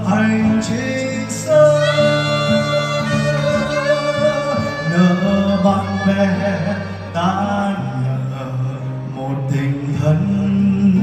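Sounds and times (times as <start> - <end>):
acoustic guitar: 0.0 - 11.0
bass: 0.0 - 11.0
man singing: 0.0 - 11.0
saxophone: 0.2 - 9.2.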